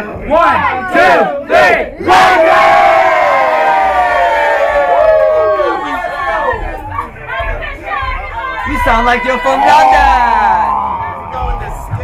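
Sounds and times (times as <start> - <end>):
people shouting: 0.3 - 11.9
group of people cheering: 2.1 - 12.0.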